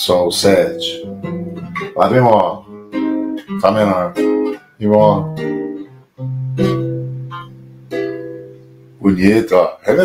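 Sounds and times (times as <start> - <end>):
classical guitar strumming chords: 0.2 - 9.7.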